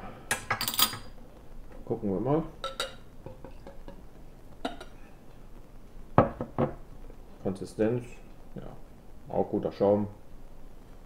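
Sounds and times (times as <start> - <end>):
faint splashing and clinking: 0.4 - 1.9, 2.5 - 5.0
glass knocking on glass tabletop: 6.2 - 6.8.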